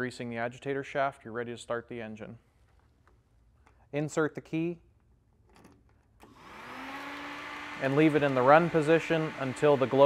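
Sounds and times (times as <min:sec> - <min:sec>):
small electric motor whine: 0:06.2 - 0:08.8.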